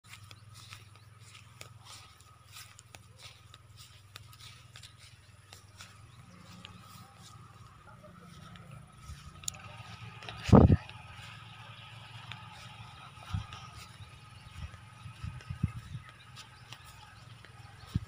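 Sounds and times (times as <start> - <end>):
footsteps on field ground: 0.0 - 18.0.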